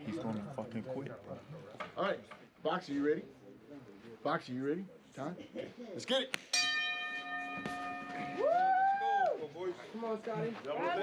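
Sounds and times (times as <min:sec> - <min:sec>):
boxing bell ringing: 0:06.5 - 0:08.7
man shouting woo: 0:08.4 - 0:09.4.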